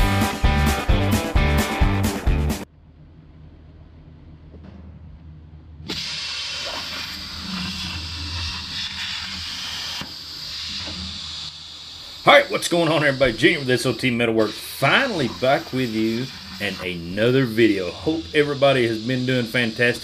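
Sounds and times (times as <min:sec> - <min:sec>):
guitar music: 0:00.0 - 0:02.6
low steady hum: 0:02.7 - 0:05.9
plasma torch cutting steel: 0:05.9 - 0:20.0.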